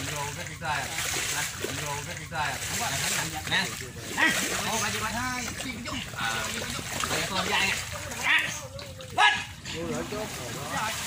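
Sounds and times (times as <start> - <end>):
men calling out: 0.0 - 11.0
water splashing: 0.0 - 11.0.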